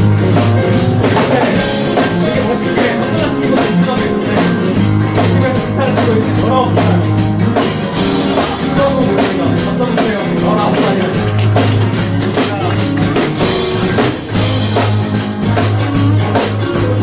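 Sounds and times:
drum kit beat: 0:00.0 - 0:17.0
electric bass: 0:00.0 - 0:17.0
electric guitars: 0:00.0 - 0:17.0
keyboard: 0:00.0 - 0:17.0.

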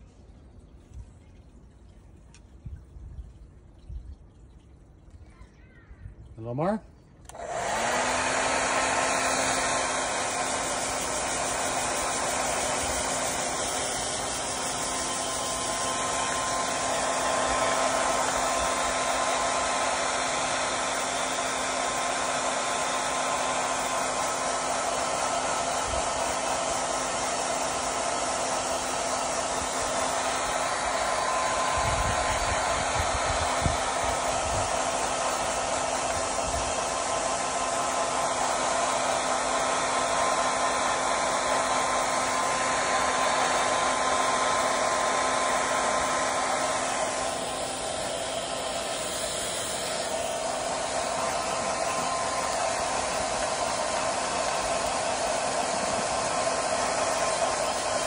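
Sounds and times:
blow dryer running: 0:07.2 - 0:58.0.

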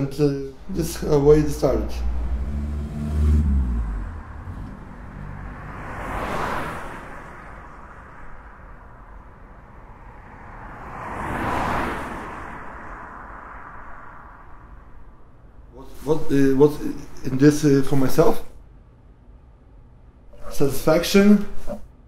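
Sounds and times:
cars passing by: 0:00.0 - 0:22.0
low hum: 0:01.9 - 0:05.7.

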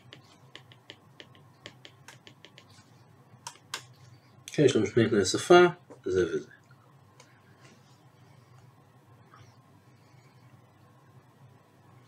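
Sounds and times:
stylus tapping on tablet screen: 0:00.0 - 0:04.1.

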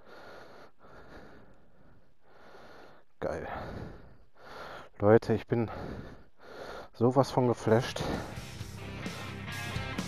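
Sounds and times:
faint breathing: 0:00.0 - 0:05.0, 0:05.6 - 0:07.0, 0:07.9 - 0:09.7.

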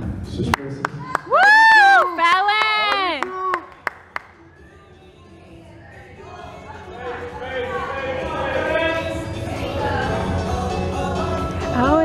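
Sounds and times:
person cheering yells: 0:01.0 - 0:03.1
scattered claps: 0:02.2 - 0:04.4.

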